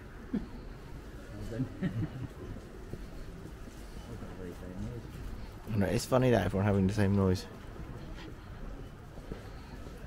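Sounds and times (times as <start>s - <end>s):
low street rumble: 0.0s - 10.0s.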